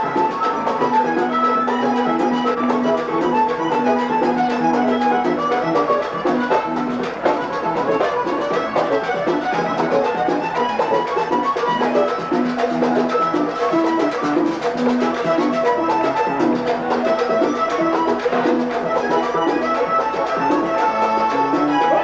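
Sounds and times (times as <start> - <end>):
accordion melody: 0.0 - 22.0
percussion rhythm: 0.0 - 22.0.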